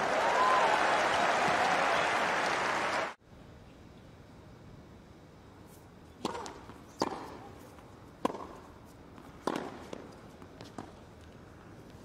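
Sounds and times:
crowd applauding and cheering: 0.0 - 3.2.

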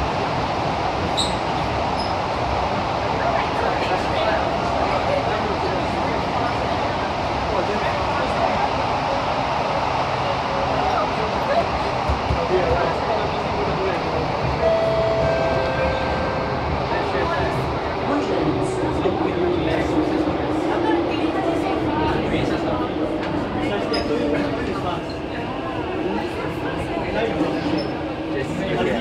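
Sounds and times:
metro train running: 0.0 - 29.0.

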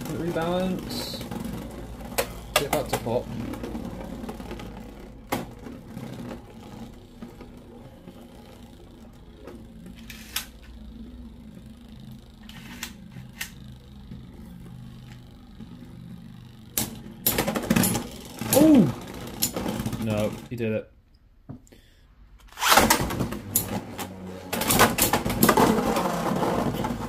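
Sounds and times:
spinning tops whirring: 0.0 - 20.6, 22.4 - 27.0
spinning tops clacking together: 16.8 - 20.1.

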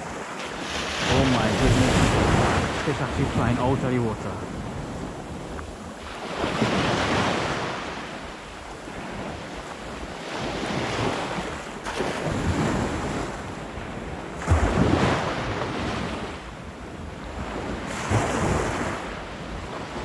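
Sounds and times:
small waves breaking on beach: 0.0 - 20.0
wind buffeting microphone: 0.0 - 20.0.

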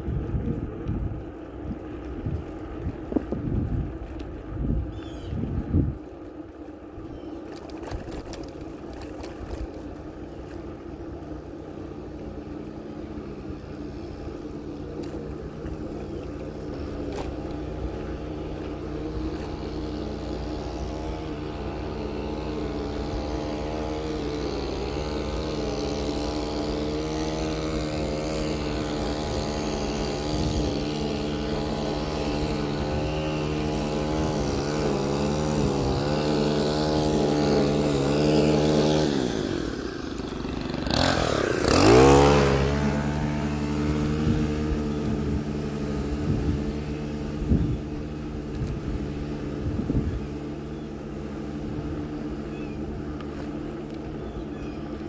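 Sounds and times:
small bicycle motor running: 0.0 - 55.0.

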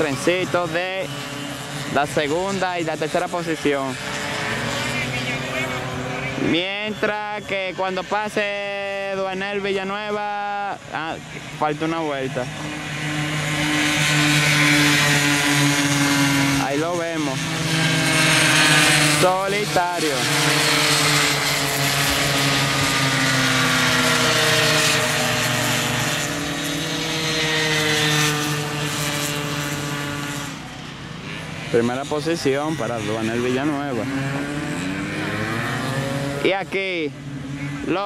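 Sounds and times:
mini-motorbike engines whining: 0.0 - 38.0.

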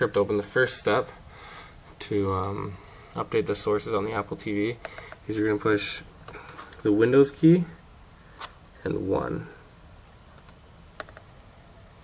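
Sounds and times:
laptop keyboard clicks: 10.4 - 11.2.

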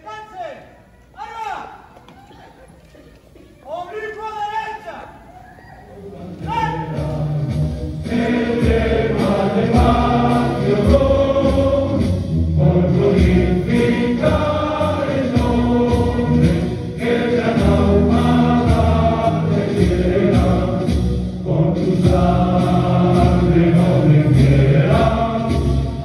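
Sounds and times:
choir singing a hymn: 4.7 - 26.0
choir breaths: 5.1 - 10.6.

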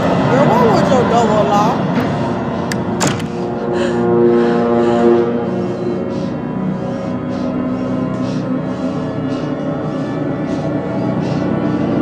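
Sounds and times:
low droning tones: 0.0 - 12.0.

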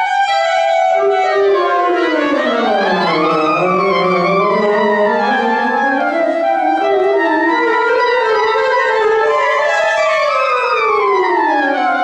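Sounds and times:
clarinet glissando: 0.3 - 12.0
saxophone glissando: 1.0 - 12.0.

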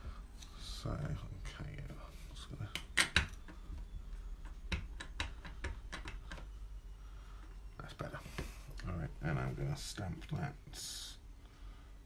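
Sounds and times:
stamp clicks and taps: 2.7 - 3.6, 4.4 - 6.5.

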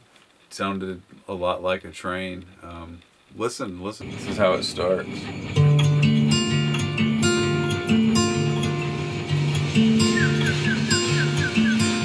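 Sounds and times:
acoustic guitar picking chords: 4.0 - 12.0.

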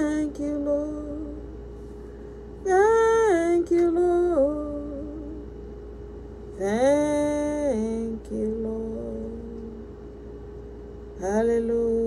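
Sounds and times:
woman singing worship song: 0.0 - 1.6, 2.6 - 5.5, 6.6 - 9.9, 11.2 - 12.0.

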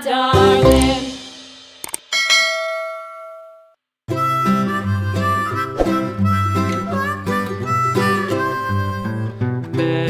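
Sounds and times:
bell ding: 2.1 - 3.7.

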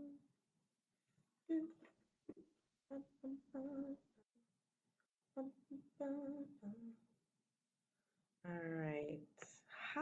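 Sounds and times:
woman humming: 1.5 - 1.9, 2.9 - 4.2, 5.4 - 7.1.

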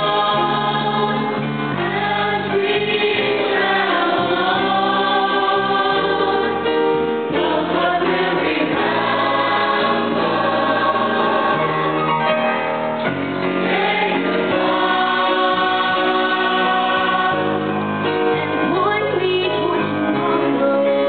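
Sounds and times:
choir singing in harmony: 0.0 - 18.7.

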